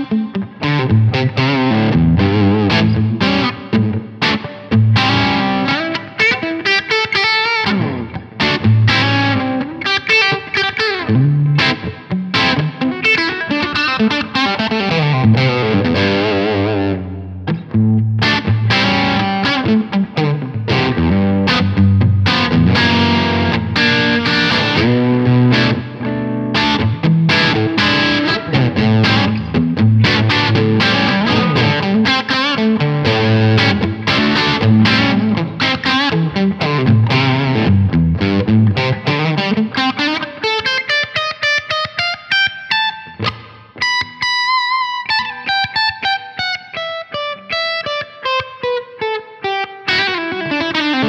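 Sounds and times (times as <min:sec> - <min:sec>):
overdriven electric guitar: 0:00.0 - 0:51.0.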